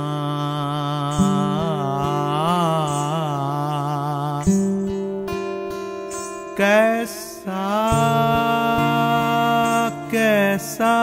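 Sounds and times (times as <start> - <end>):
acoustic guitar chord strum: 0.0 - 11.0.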